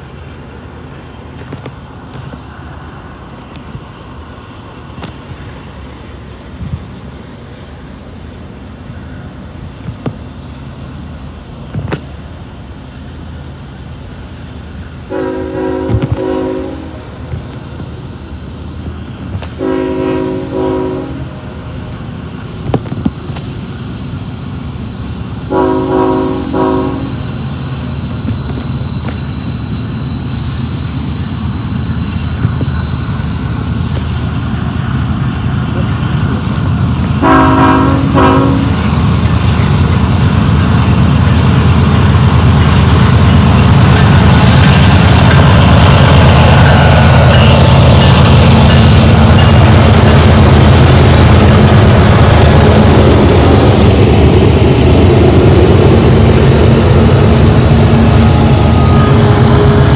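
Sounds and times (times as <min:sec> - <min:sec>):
train air horn blasts: 0:15.1 - 0:17.1, 0:19.6 - 0:21.4, 0:25.5 - 0:27.3, 0:37.2 - 0:38.9.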